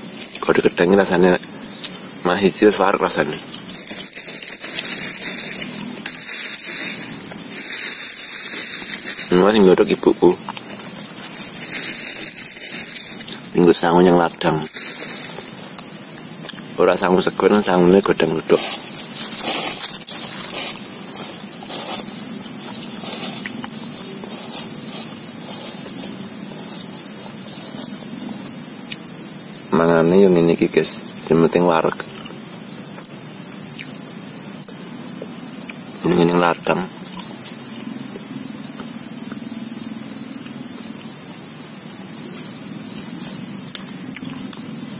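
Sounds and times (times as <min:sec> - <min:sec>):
crickets and insects chorus: 0:00.0 - 0:44.9.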